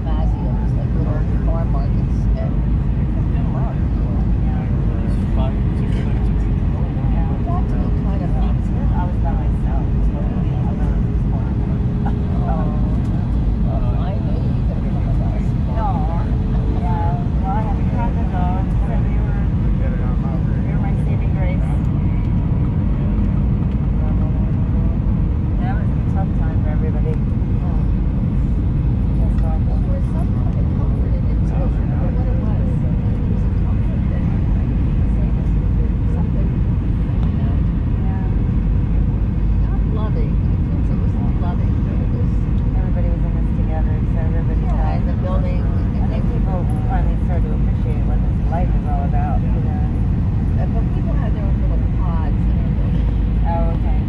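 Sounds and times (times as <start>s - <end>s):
airliner cabin rumble: 0.0s - 54.0s
people talking faintly: 0.0s - 54.0s.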